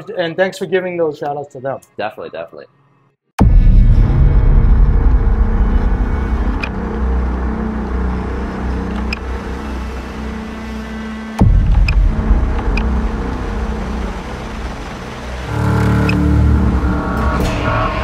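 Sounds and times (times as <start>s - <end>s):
sudden hit: 3.4s - 7.7s, 11.4s - 14.8s, 15.4s - 18.0s
low rumbling drone: 3.4s - 18.0s.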